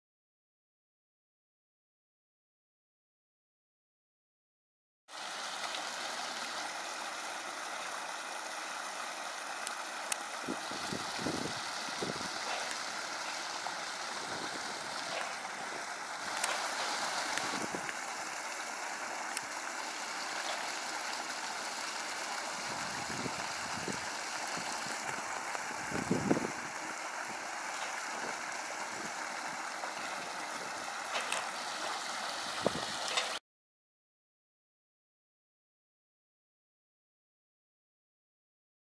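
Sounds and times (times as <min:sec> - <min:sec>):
muddy stream rushing: 0:05.1 - 0:33.4.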